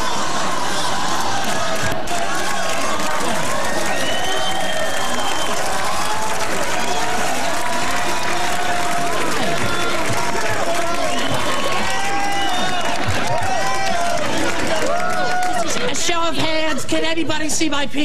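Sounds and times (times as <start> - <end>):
audience cheering and applauding: 0.0 - 16.4.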